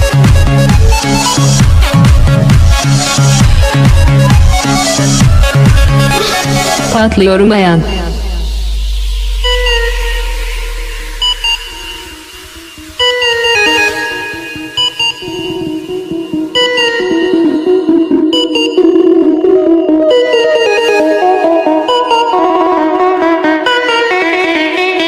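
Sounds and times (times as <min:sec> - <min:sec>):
deep bass drone: 0:00.0 - 0:13.2
electronic plucked notes with echo: 0:00.0 - 0:25.0.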